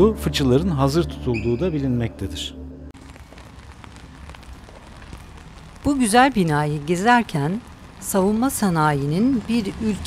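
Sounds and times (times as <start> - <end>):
rain drop ticks: 3.0 - 10.0
rain on wet paving: 3.0 - 10.0.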